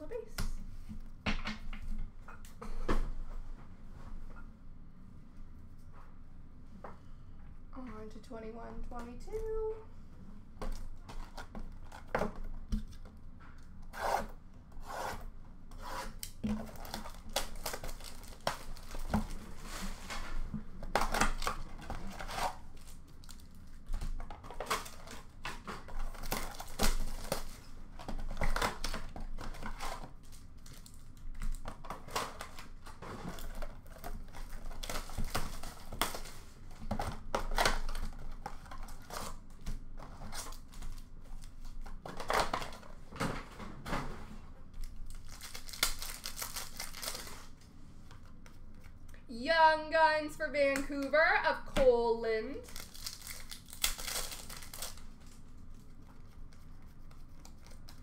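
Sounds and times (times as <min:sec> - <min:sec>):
card pack wrappers crinkling: 0:16.6 - 0:19.6, 0:44.8 - 0:47.6, 0:52.6 - 0:55.5.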